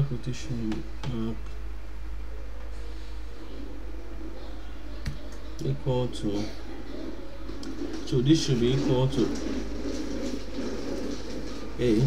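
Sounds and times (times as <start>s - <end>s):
low electrical hum: 0.0s - 12.0s
bird cooing softly: 2.3s - 8.2s.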